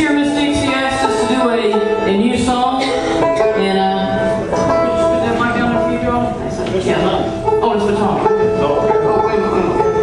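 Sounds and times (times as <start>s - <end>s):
bluegrass band playing: 0.0s - 10.0s.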